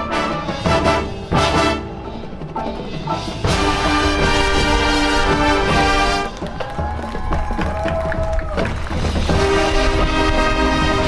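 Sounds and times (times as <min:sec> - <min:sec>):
brass band sustained chord: 0:00.0 - 0:02.4, 0:03.4 - 0:06.4, 0:09.3 - 0:11.0.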